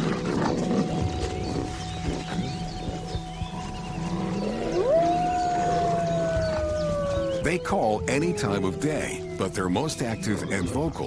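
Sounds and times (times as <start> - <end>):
wolf howling: 0.9 - 10.6
faint thin wolf howl: 4.2 - 9.4.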